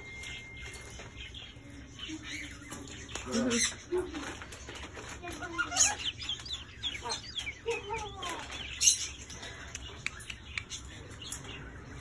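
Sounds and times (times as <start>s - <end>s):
caged birds chirping: 0.0s - 12.0s.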